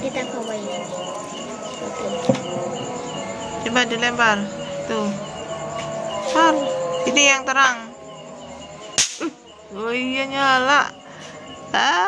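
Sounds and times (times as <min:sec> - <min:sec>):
cricket chirping: 0:00.0 - 0:12.0.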